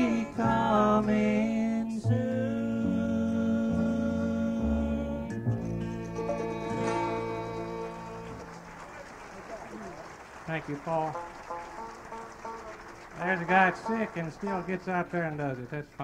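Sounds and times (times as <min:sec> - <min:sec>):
audience applause: 0:06.8 - 0:16.0
man talking: 0:10.5 - 0:11.2, 0:13.2 - 0:16.0.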